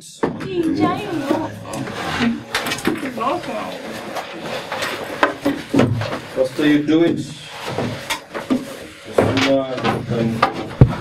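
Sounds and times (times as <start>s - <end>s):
chairs and desks knocking: 0.2s - 11.0s
voices talking over one another: 0.4s - 2.5s.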